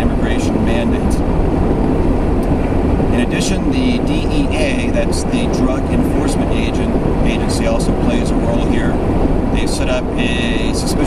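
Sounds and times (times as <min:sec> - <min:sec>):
car engine running: 0:00.0 - 0:11.0
tyres rumbling on road: 0:00.0 - 0:11.0.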